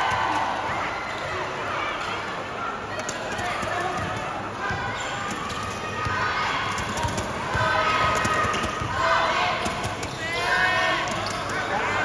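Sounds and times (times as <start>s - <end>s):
crowd chatter and shouts: 0.0s - 12.0s.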